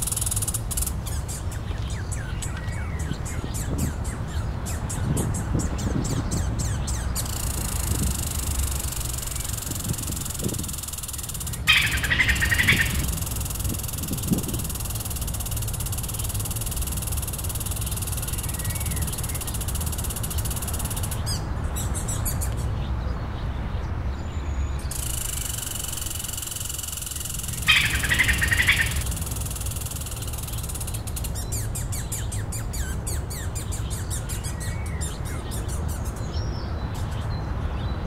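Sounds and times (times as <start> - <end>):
rapid bird chirping: 0.0 - 22.7, 24.8 - 37.4
bird chirps: 0.0 - 22.8, 24.2 - 38.0.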